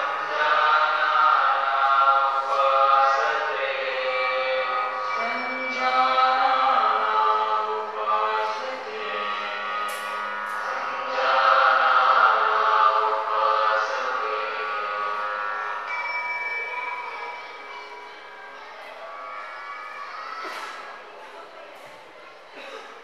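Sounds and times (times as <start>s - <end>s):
voices chanting on held tones: 0.0s - 20.8s.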